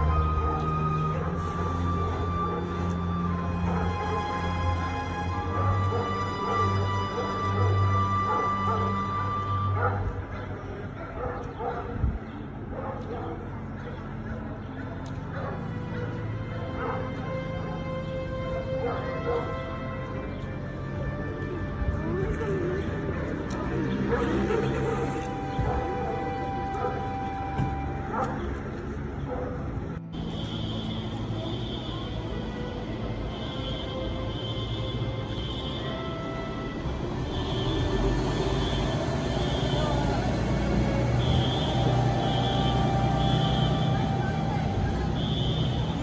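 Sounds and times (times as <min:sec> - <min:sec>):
street din: 0:00.0 - 0:46.0
dog barking: 0:03.6 - 0:04.1, 0:05.5 - 0:09.0, 0:09.7 - 0:10.4, 0:11.0 - 0:12.0, 0:12.7 - 0:14.4, 0:15.3 - 0:17.2, 0:18.8 - 0:19.6, 0:25.6 - 0:27.1, 0:28.1 - 0:28.6, 0:29.2 - 0:29.8.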